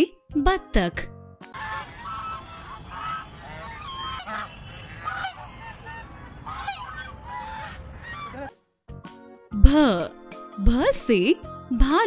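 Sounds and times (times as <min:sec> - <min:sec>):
geese honking: 0:01.5 - 0:08.6.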